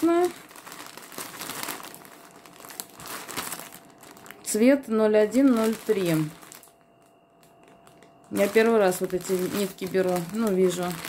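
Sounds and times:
plastic film crinkling: 0.0s - 11.0s.

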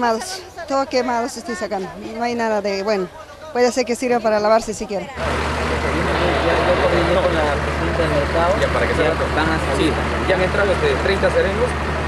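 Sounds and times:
people talking: 0.0s - 11.8s
engine idling hum: 2.6s - 12.0s.

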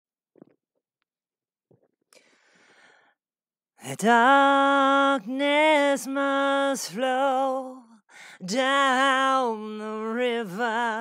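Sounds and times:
microphone clicks and bumps: 0.3s - 0.8s, 1.7s - 2.1s.

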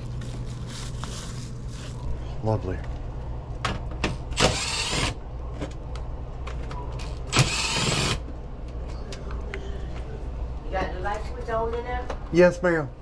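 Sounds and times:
plastic bags and bedding rustling: 0.0s - 2.8s
air handler blower humming: 0.0s - 13.0s.

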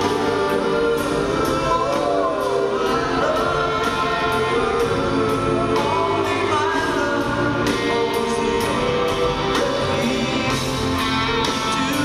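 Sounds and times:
electric guitar chords: 0.0s - 12.0s
man singing: 0.0s - 12.0s.

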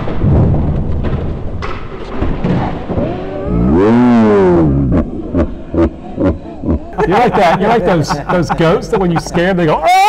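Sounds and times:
slowed-down man's cry: 3.0s - 5.0s, 9.8s - 10.0s.

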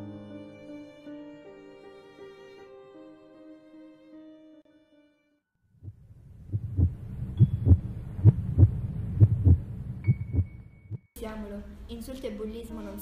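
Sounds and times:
heartbeat thumps: 5.8s - 11.1s
low steady hum: 5.8s - 12.0s.

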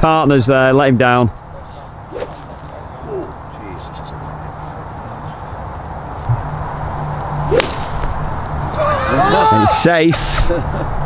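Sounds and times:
golf club swishing: 2.1s - 3.4s, 7.4s - 8.2s
golf ball struck with crack: 7.4s - 8.2s.

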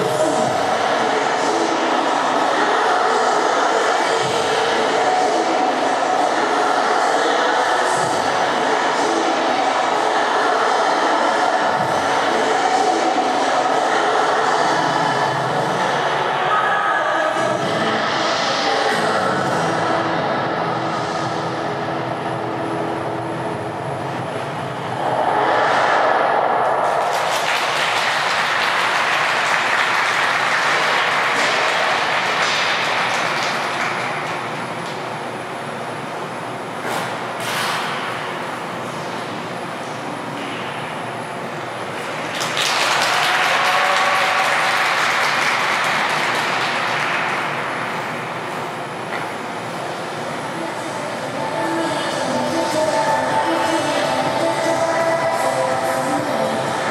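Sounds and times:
audience applauding and cheering: 26.5s - 34.5s, 42.2s - 48.0s.

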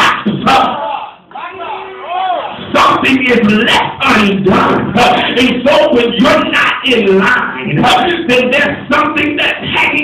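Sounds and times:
congregation voices calling out: 0.0s - 2.6s.

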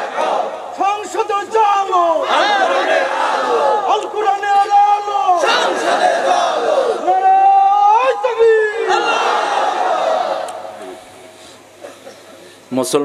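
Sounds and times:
crowd chanting in unison: 0.0s - 0.8s, 2.2s - 3.9s, 5.4s - 7.1s, 8.8s - 10.8s
long shouted call: 0.0s - 10.6s.

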